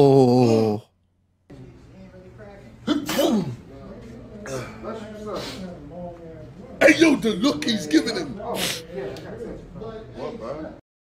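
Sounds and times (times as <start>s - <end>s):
person sneezing: 2.9s - 3.6s.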